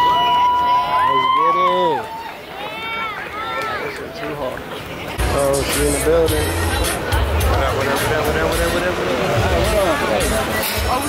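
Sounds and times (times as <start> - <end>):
background talk: 0.0 - 11.0.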